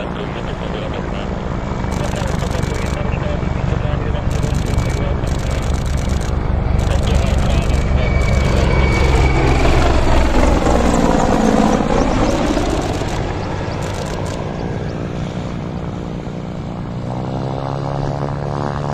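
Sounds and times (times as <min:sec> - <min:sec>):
helicopter rotor and engines: 0:00.0 - 0:18.9.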